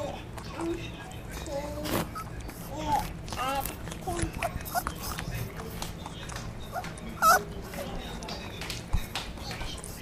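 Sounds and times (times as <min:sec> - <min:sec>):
animal whining: 0:01.5 - 0:05.5, 0:06.6 - 0:07.6.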